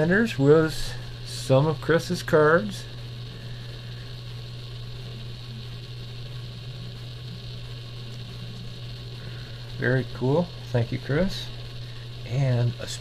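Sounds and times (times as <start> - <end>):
faint hiss: 0.0 - 13.0
low electrical hum: 0.0 - 13.0.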